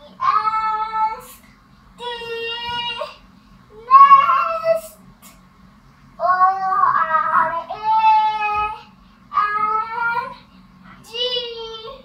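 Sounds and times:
child singing sing-song phrases: 6.2s - 10.4s, 11.0s - 12.0s.

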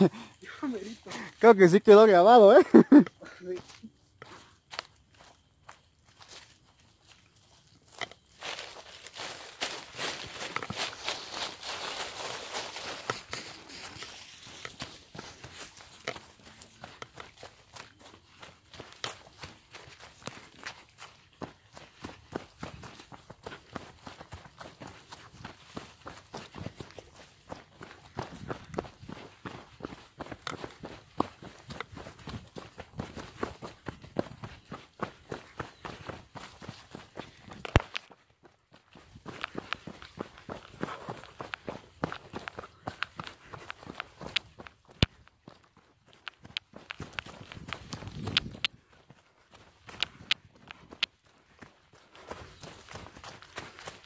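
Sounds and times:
footsteps crunching dry leaves: 2.8s - 38.2s, 38.8s - 54.0s.

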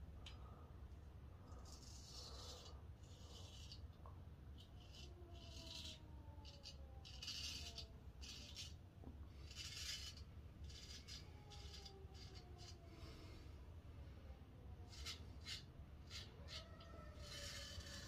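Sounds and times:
razor scraping stubble: 1.5s - 4.0s, 4.6s - 12.8s, 14.9s - 18.0s.

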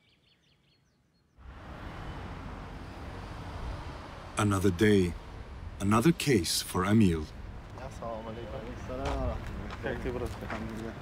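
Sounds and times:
small bird chirping: 0.0s - 1.4s.

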